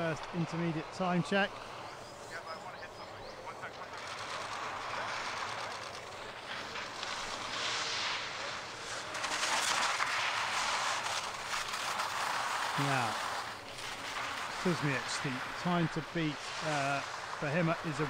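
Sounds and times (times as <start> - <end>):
ski chatter on snow: 0.0 - 18.0
ski edges scraping snow: 3.2 - 18.0.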